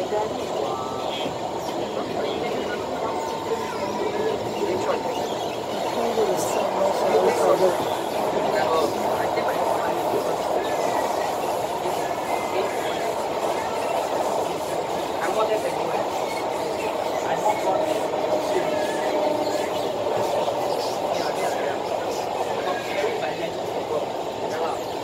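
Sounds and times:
train wheels rumbling: 0.0 - 25.0.

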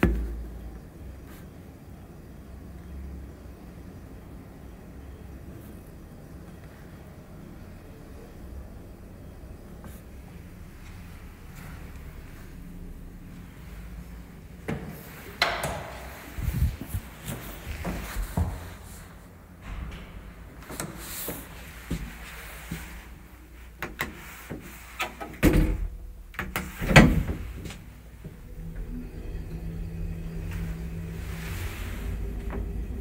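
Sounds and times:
elevator machine humming: 6.0 - 23.6, 26.0 - 33.0
elevator doors thudding shut: 14.6 - 22.9
clicks and knocks: 14.7 - 16.7.

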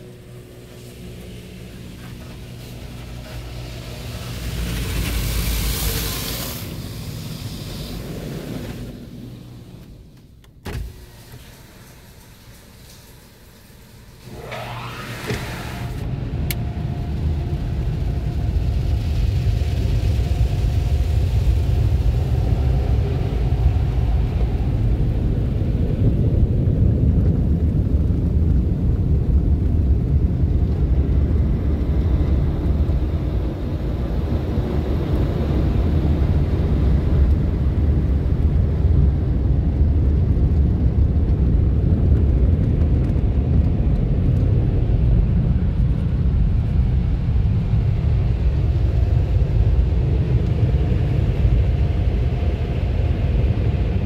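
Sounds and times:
car wash machinery rumbling: 0.0 - 54.0.

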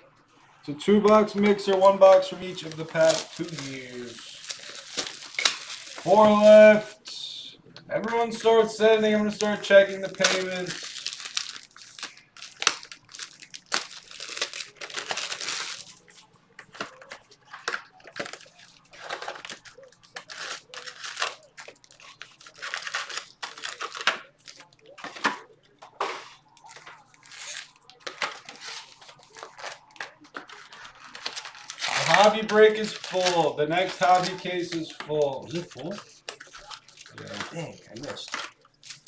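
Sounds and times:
plastic wrapping crinkling: 1.0 - 7.1, 8.0 - 39.0.

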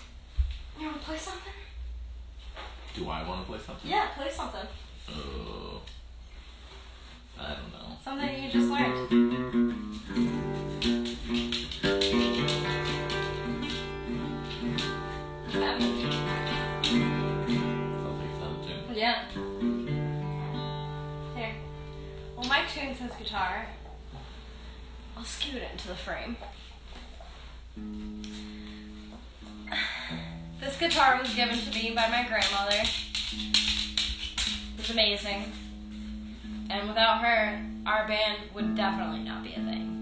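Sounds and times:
acoustic guitar picking: 8.2 - 26.3, 27.4 - 40.0.

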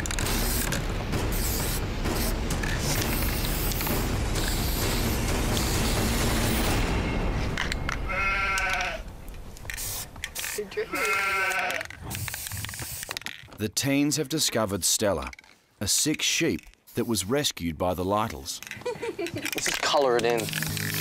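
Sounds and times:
aerosol spray can hissing: 0.0 - 6.8, 9.7 - 10.6, 12.1 - 13.2, 20.2 - 21.0
sheep bleating: 8.1 - 9.0, 10.8 - 11.8.

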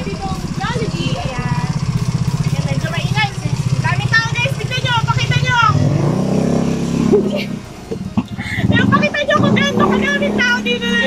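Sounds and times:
voices: 0.0 - 6.2, 7.0 - 11.0
vehicle engine idling: 0.0 - 11.0.

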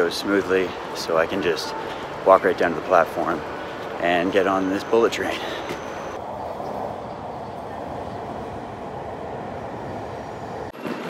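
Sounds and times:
train rushing past: 1.7 - 11.0.

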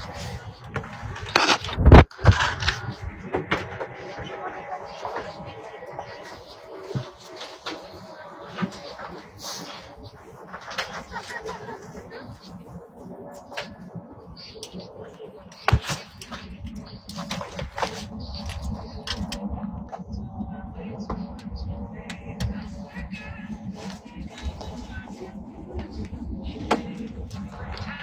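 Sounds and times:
indistinct passenger voices: 0.0 - 28.0.

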